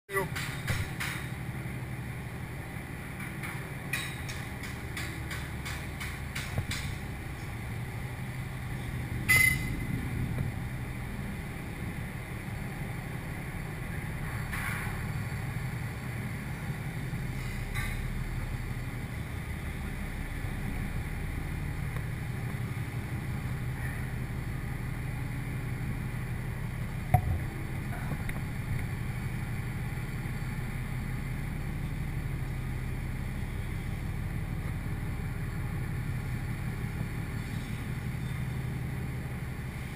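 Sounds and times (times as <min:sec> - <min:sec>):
sharp metallic knocks: 0:00.2 - 0:01.3, 0:03.2 - 0:07.0, 0:27.1 - 0:28.2
machinery drone: 0:07.0 - 0:38.7.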